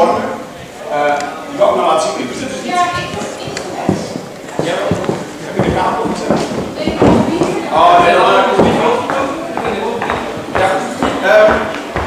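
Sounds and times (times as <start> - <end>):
people talking in a hall: 0.0 - 12.0.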